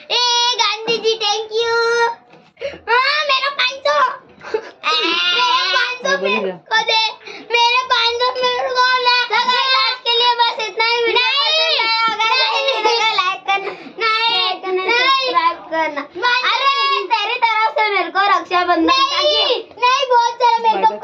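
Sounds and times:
children squealing and laughing: 0:02.7 - 0:18.1, 0:18.8 - 0:21.0.

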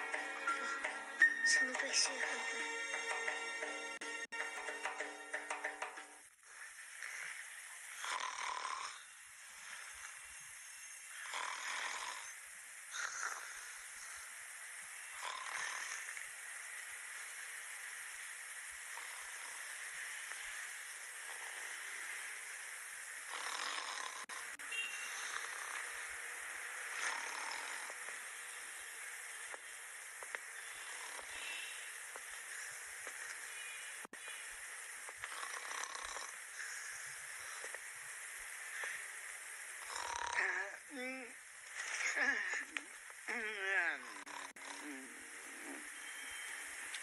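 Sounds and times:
steady background hiss: 0:04.6 - 0:47.0
person snoring: 0:06.5 - 0:10.4, 0:11.1 - 0:14.3, 0:15.1 - 0:16.2, 0:23.2 - 0:26.2, 0:26.8 - 0:28.2, 0:35.2 - 0:37.8, 0:39.8 - 0:41.3, 0:42.0 - 0:45.9.

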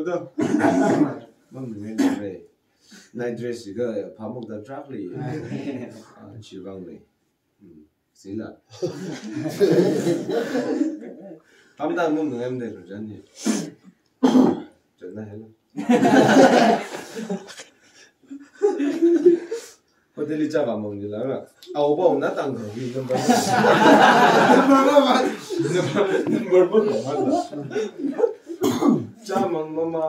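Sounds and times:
people talking: 0:00.0 - 0:02.4, 0:03.2 - 0:07.0, 0:20.2 - 0:30.0
person coughing: 0:00.4 - 0:01.2, 0:02.0 - 0:02.3, 0:13.5 - 0:14.7, 0:28.5 - 0:29.2.

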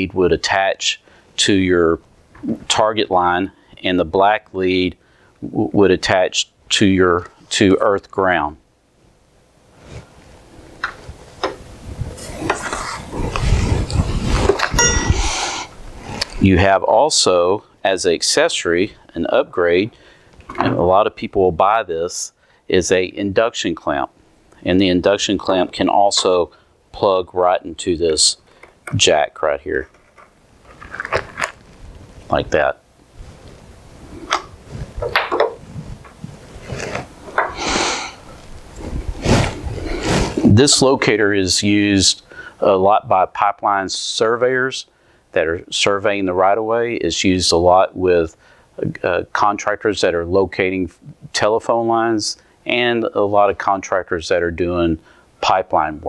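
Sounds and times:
cable rustling: 0:29.8 - 0:32.3.

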